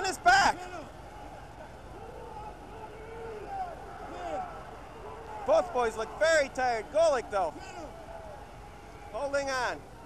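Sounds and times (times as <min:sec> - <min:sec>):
crowd hubbub: 0:00.0 - 0:10.0
voices shouting: 0:00.0 - 0:10.0.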